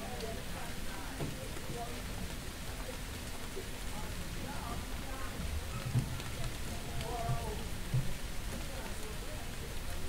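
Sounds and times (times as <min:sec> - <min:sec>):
faint voices: 0:00.0 - 0:10.0
rain falling on a street: 0:00.0 - 0:10.0.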